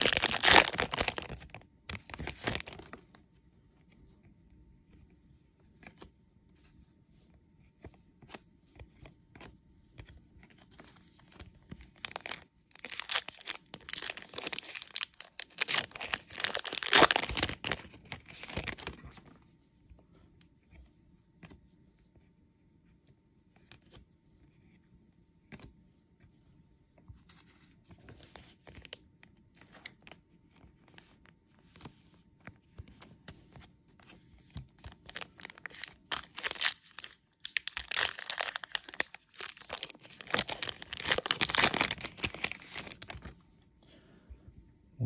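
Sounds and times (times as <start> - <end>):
card pack wrapper tearing and crinkling: 0.0 - 3.0, 11.7 - 19.0, 34.8 - 43.3.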